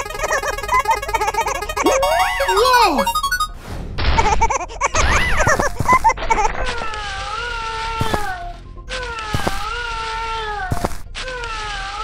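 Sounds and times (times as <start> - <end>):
cartoon music and sound effects: 0.0 - 4.2.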